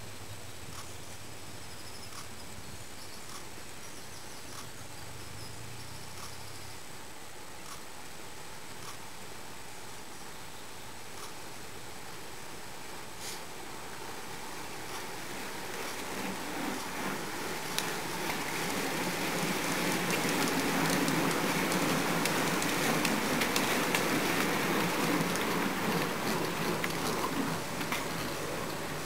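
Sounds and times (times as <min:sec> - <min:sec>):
bicycle tyres hissing on tarmac: 0:00.0 - 0:29.0.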